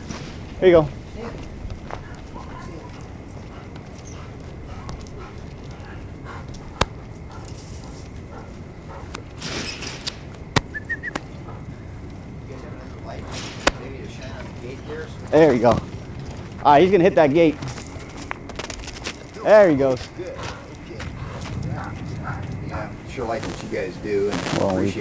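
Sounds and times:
footsteps on concrete: 0:00.0 - 0:09.4, 0:15.2 - 0:22.8.

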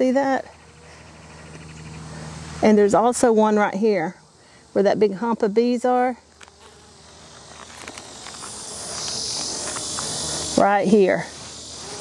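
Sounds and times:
high steady hiss: 0:00.0 - 0:12.0
honeybees buzzing: 0:00.0 - 0:12.0.

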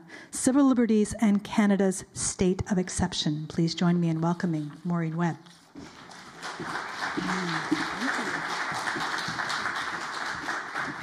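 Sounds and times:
audience clapping: 0:05.8 - 0:11.0
person speaking: 0:07.2 - 0:08.5.

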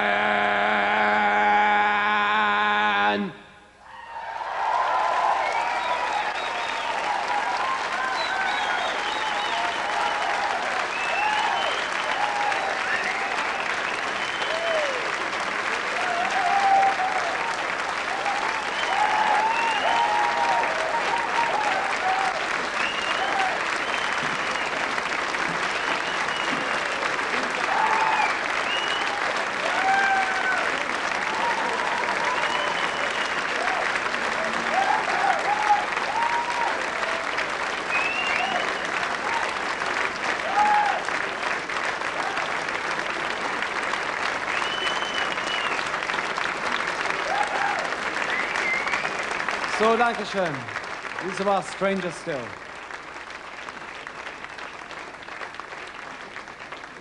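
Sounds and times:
audience cheers: 0:03.8 - 0:43.3, 0:44.2 - 0:52.5
audience applauding: 0:04.0 - 0:57.0
audience whistles: 0:05.2 - 0:15.1, 0:18.2 - 0:26.9, 0:27.6 - 0:30.6, 0:31.3 - 0:33.8, 0:34.7 - 0:39.5, 0:44.5 - 0:46.1, 0:47.2 - 0:50.2, 0:54.4 - 0:54.9.

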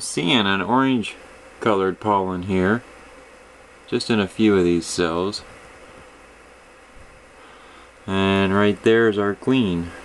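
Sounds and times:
room tone hiss: 0:00.0 - 0:10.0.

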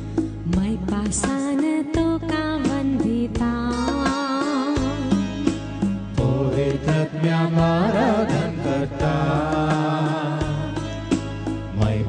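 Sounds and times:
instrumental accompaniment with beat: 0:00.0 - 0:12.0.

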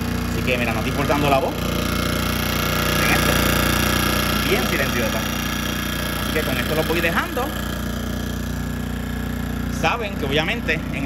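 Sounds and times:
generator engine hum: 0:00.0 - 0:11.0
person speaking: 0:00.3 - 0:01.7, 0:02.9 - 0:03.5, 0:04.4 - 0:05.4, 0:06.2 - 0:07.7.

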